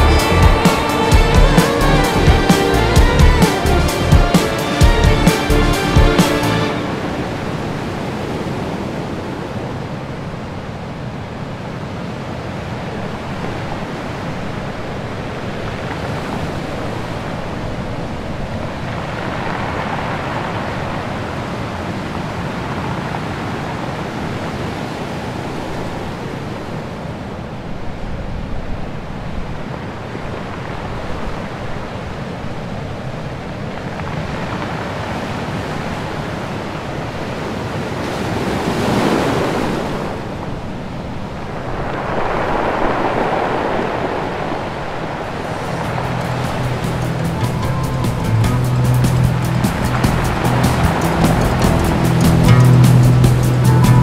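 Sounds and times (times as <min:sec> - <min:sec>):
stormy waves breaking: 0:00.0 - 0:54.0
wind: 0:00.0 - 0:54.0.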